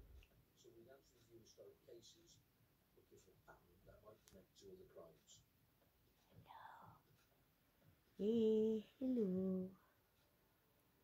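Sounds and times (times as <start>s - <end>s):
faint whisper: 0.6s - 2.4s, 3.0s - 5.4s, 6.2s - 7.2s.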